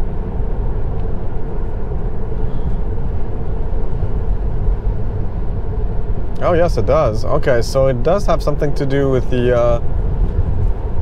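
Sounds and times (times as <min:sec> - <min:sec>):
rushing air: 0:00.0 - 0:07.7
tyre roar inside car: 0:00.0 - 0:11.0.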